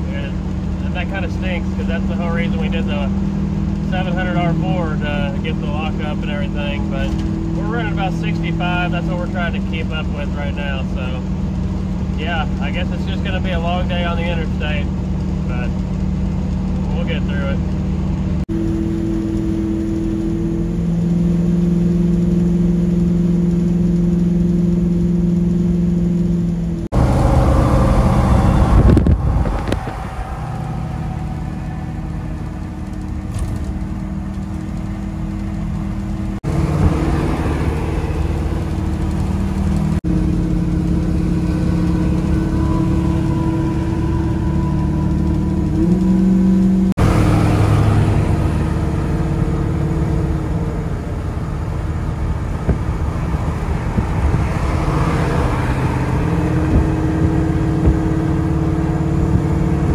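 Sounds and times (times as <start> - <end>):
engine drone: 0.0 - 59.9
tyre and wind noise: 26.9 - 31.1, 51.9 - 59.9.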